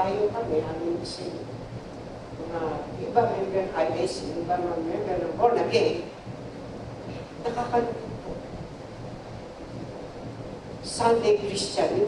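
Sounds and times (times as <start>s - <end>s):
low room hum: 0.0s - 12.0s
steady background hiss: 0.0s - 12.0s.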